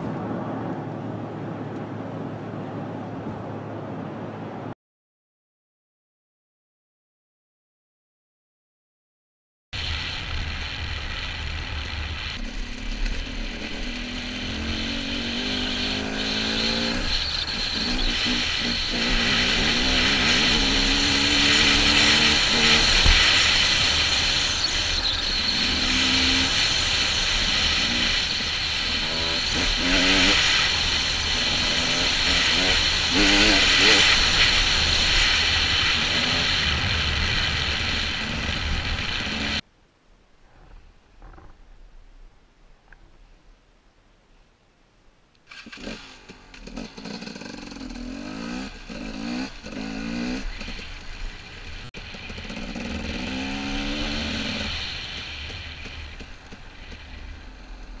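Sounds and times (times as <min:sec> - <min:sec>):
dirt bike engine revving: 0:10.4 - 0:39.6, 0:45.5 - 0:58.0.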